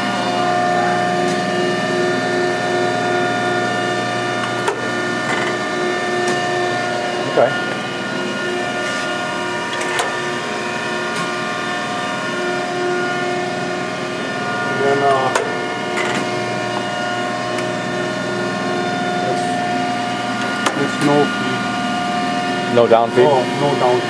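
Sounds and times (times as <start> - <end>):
surface grinder humming: 0.0 - 24.0.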